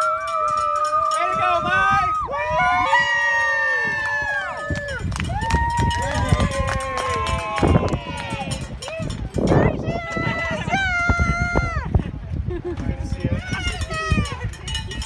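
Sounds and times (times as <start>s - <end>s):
children cheering and shouting: 0.0s - 8.6s, 9.6s - 11.9s.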